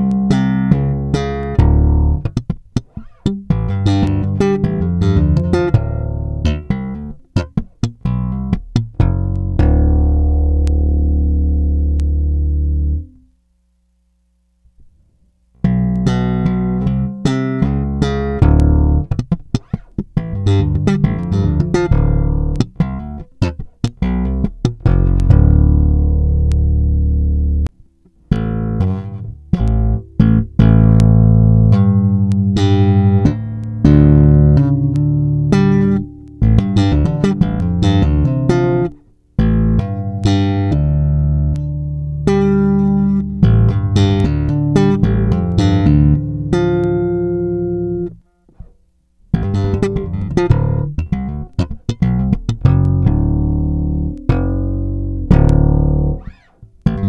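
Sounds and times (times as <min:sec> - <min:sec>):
slap bass riff: 0:00.0 - 0:13.3, 0:15.6 - 0:57.0.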